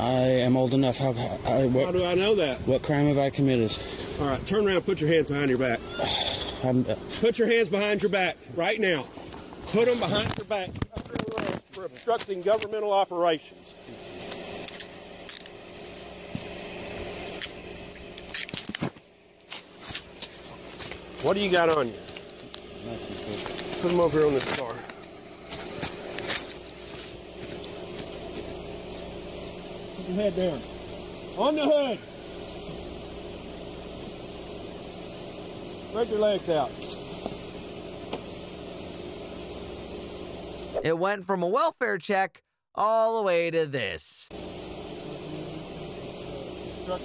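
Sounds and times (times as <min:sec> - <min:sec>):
car engine idling: 0:00.0 - 0:10.7, 0:11.8 - 0:40.8, 0:44.3 - 0:47.0
steady low hum: 0:00.0 - 0:40.8, 0:43.8 - 0:47.0.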